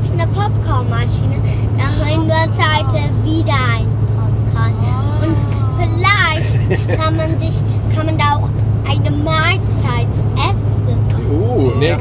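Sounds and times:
road and engine drone: 0.0s - 12.0s
high-pitched voices: 1.8s - 7.6s.

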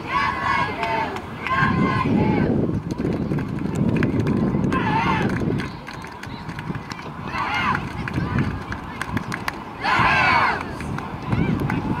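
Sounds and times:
loud group shout: 4.8s - 5.3s, 9.8s - 10.6s.

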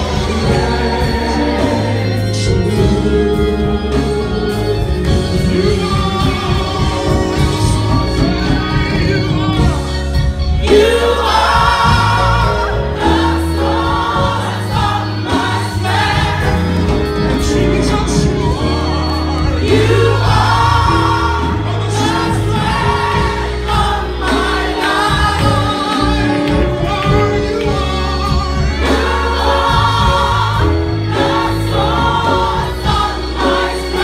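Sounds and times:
gospel choir singing: 0.0s - 34.0s
keyboard accompaniment: 0.0s - 34.0s.

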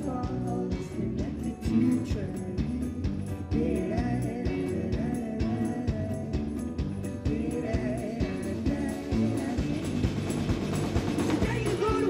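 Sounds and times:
live pop-rock band playing: 0.0s - 12.0s
steady drum beat: 0.0s - 12.0s.

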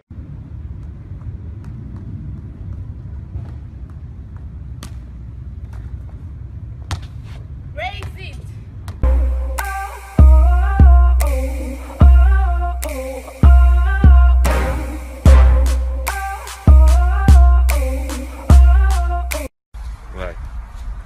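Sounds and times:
wind rumble on microphone: 0.1s - 6.9s
electronic music with heavy bass: 9.0s - 19.5s.

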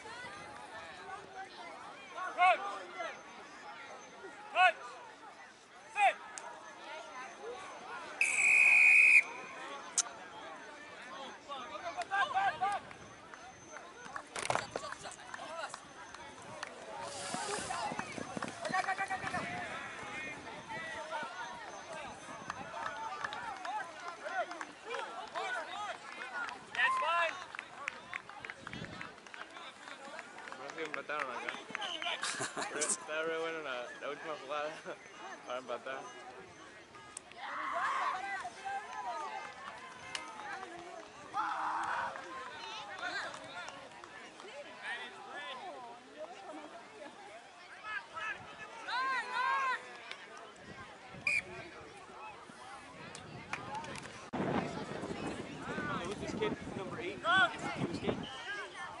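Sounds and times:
people shouting and calling out: 0.0s - 12.9s, 33.7s - 52.9s.

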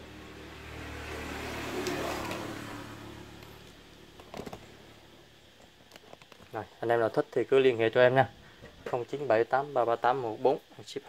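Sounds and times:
road vehicle passing by: 0.0s - 4.2s.

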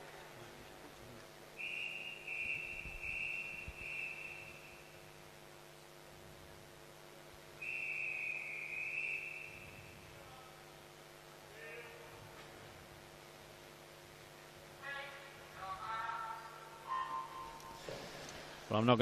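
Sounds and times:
whistle short blasts: 1.6s - 4.9s, 7.6s - 10.2s, 16.8s - 17.9s
whistle long blast: 1.6s - 5.0s, 7.6s - 10.3s, 16.8s - 17.8s.

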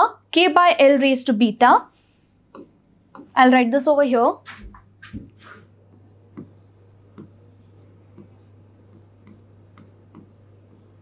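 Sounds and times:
low electrical hum: 0.0s - 11.0s
stylus tapping on screen: 2.5s - 3.4s, 4.6s - 11.0s.

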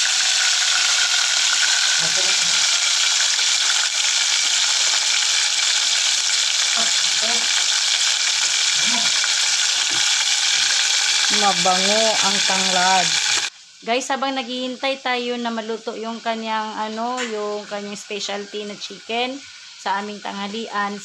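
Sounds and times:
chicken sizzling in hot oil: 0.0s - 21.0s.

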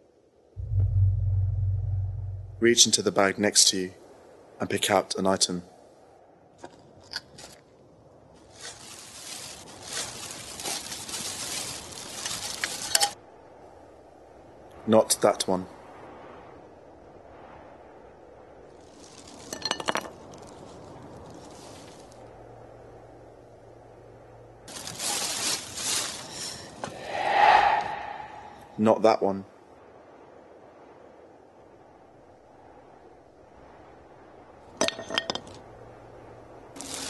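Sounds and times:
bag rustling: 8.4s - 13.1s, 24.7s - 26.8s, 36.8s - 37.0s.

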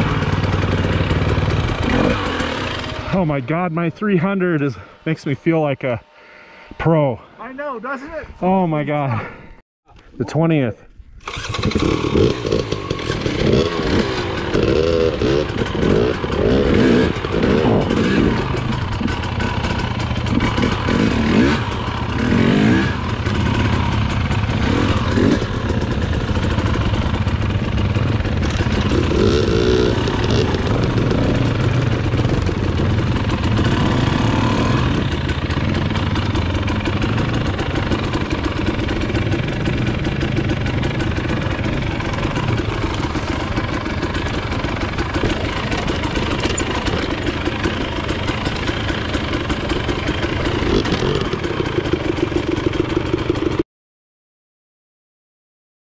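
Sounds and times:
motorcycle engine revving: 0.0s - 6.0s, 11.2s - 53.6s.

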